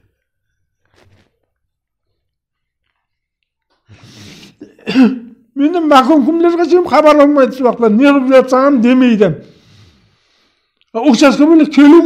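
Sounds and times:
man clearing throat: 4.6 - 5.4
man speaking: 4.9 - 9.5, 10.9 - 12.0
faint breath: 9.4 - 10.8.

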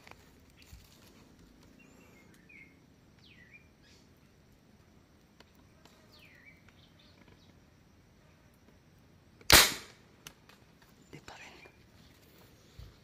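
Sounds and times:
marble gun crack: 9.4 - 10.4.

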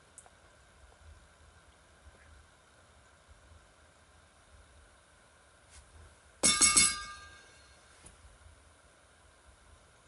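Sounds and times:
sharp clinks with ringing: 6.4 - 7.8.

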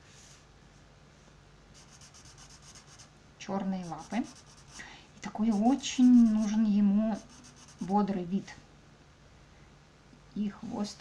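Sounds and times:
marker scratching on paper: 1.8 - 3.1, 3.8 - 8.0.

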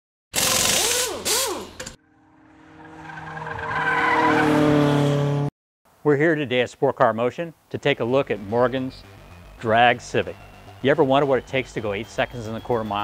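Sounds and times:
car engine: 0.4 - 5.5.

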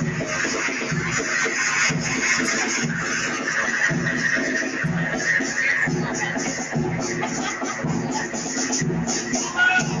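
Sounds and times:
bass drum beat: 0.0 - 10.0
marching band playing: 0.0 - 10.0.

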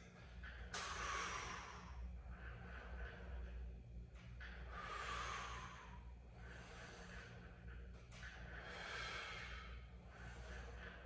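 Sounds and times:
steady low hum: 0.0 - 11.0
man breathing hard: 0.7 - 3.6, 4.4 - 11.0.

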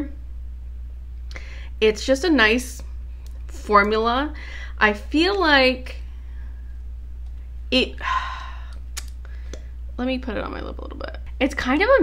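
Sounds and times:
breathy sigh: 8.0 - 9.7.

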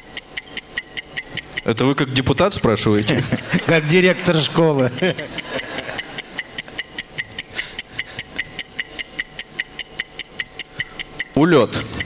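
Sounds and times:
clock ticking over speakers: 0.0 - 12.0.

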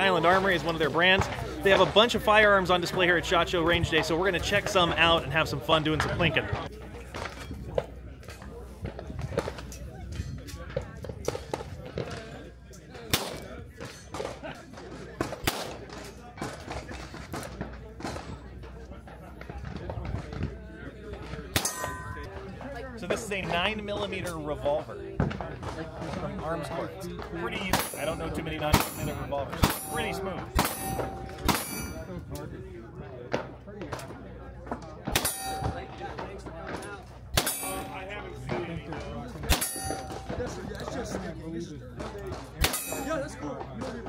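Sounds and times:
steel target ringing: 21.6 - 22.3, 28.8 - 32.0, 35.2 - 36.1, 37.4 - 38.2, 39.5 - 40.6, 42.6 - 43.2.

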